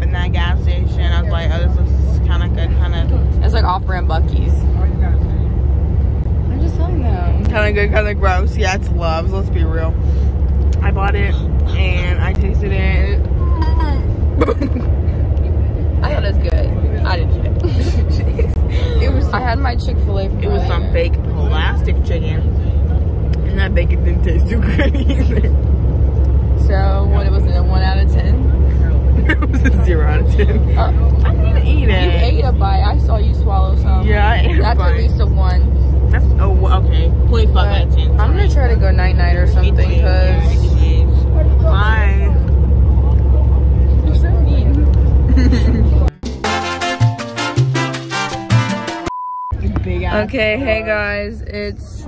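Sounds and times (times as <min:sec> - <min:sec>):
people talking: 0:00.0 - 0:05.4, 0:06.4 - 0:25.6, 0:26.5 - 0:46.2, 0:49.5 - 0:52.0
bus engine low rumble: 0:00.0 - 0:46.3, 0:49.5 - 0:52.0.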